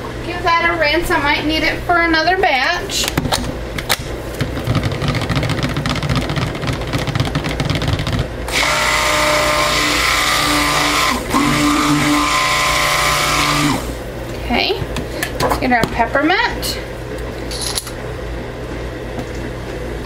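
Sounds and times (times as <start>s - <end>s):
stick blender motor running: 4.6s - 14.0s
blender head clattering: 4.7s - 14.0s.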